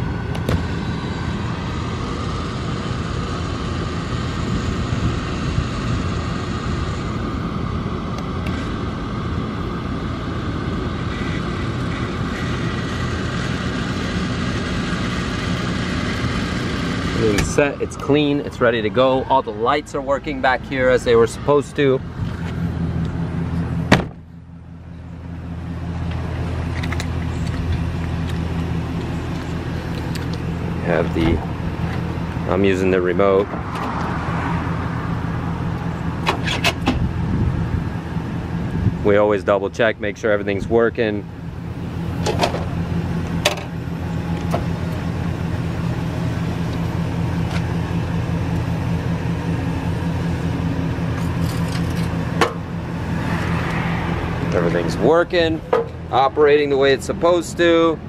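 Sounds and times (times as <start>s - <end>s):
low mechanical hum: 0.0s - 58.0s
vehicle engine idling: 0.0s - 58.0s
vehicle door shutting: 0.3s - 0.7s, 17.2s - 17.7s, 23.8s - 24.3s, 31.0s - 32.0s, 36.2s - 37.1s.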